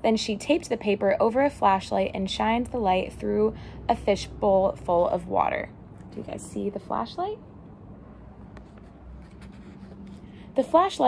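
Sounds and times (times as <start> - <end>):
low steady hum: 0.0 - 11.0
book pages rustling: 8.5 - 10.4.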